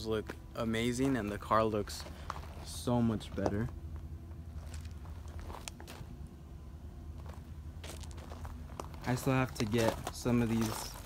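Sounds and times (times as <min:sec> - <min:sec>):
steady low hum: 0:00.0 - 0:11.0
footsteps on concrete: 0:07.2 - 0:11.0.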